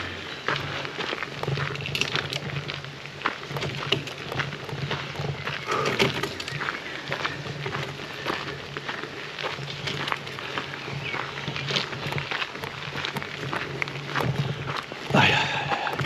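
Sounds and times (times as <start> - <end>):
bicycle tyres rolling on gravel: 0.0 - 16.0.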